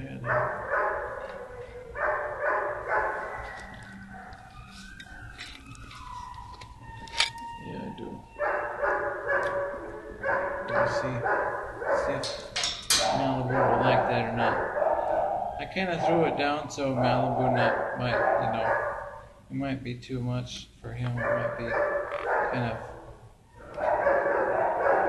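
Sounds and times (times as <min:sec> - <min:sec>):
dogs barking: 0:00.0 - 0:06.4, 0:07.8 - 0:19.4, 0:21.1 - 0:25.0.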